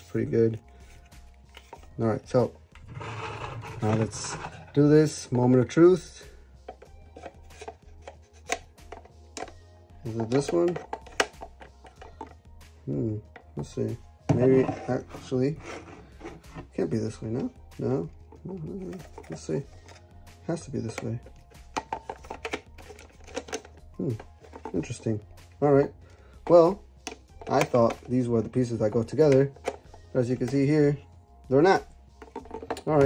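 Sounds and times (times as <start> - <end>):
hard plastic clicks and knocks: 10.2 - 12.4, 20.9 - 24.8, 32.2 - 33.0.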